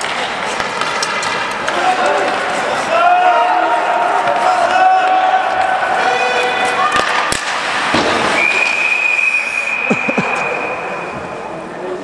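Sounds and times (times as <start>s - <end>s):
sharp crack: 6.9s - 8.6s.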